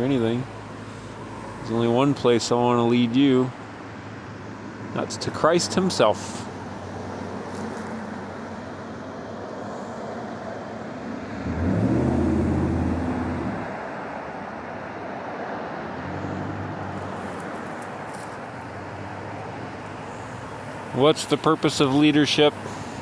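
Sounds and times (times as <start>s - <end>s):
vehicle engine drone passing: 6.2s - 23.0s.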